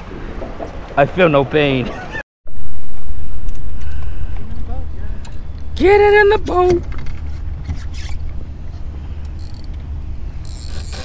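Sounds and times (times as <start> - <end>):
low rumble: 2.5 - 10.9
fishing reel whirring: 9.2 - 11.0.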